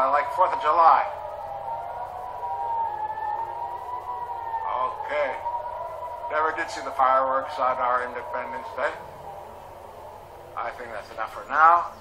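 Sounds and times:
air raid siren wailing: 0:00.0 - 0:12.0.

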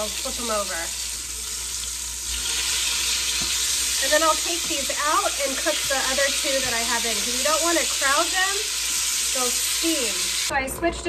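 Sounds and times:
meat sizzling in hot fat: 0:00.0 - 0:10.5.

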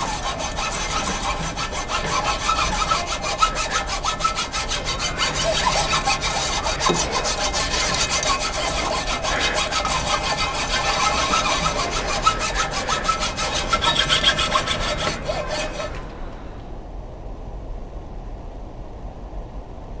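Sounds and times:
bow saw cutting log: 0:00.0 - 0:16.3.

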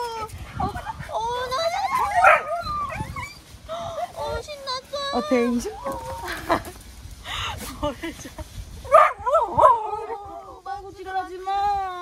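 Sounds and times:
dog whining and yelping: 0:01.8 - 0:03.5.

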